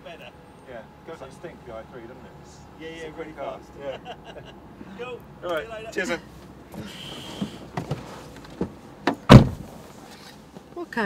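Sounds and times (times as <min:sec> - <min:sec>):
car door shutting: 0:06.7 - 0:10.4.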